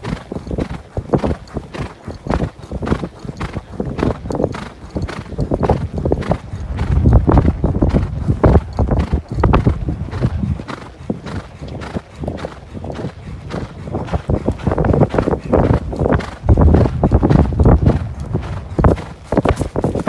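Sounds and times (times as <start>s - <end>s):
horse hoofbeats on sand: 0.0s - 20.0s.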